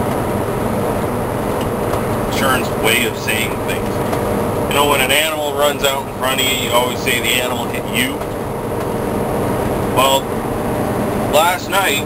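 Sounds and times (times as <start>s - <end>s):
truck engine and road noise: 0.0s - 12.0s.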